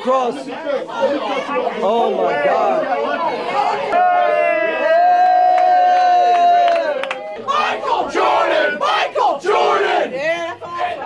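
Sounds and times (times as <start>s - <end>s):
people yelling in celebration: 3.8s - 10.2s.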